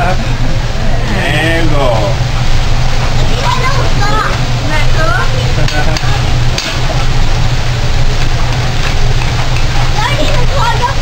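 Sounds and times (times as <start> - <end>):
vegetables sizzling on a griddle: 1.0 - 11.0.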